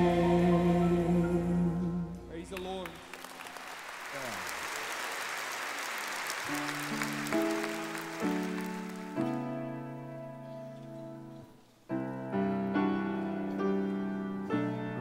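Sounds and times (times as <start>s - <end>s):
slow piano chords: 0.0s - 3.0s, 6.5s - 15.0s
congregation applauding: 2.5s - 9.5s.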